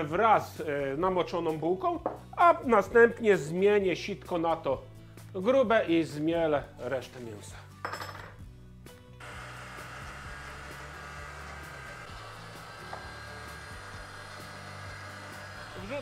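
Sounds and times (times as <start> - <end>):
electric meat grinder running: 9.2 - 16.0.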